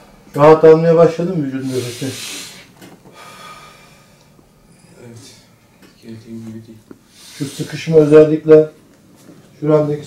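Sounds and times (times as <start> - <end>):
person breathing: 1.6 - 4.9, 7.1 - 8.0.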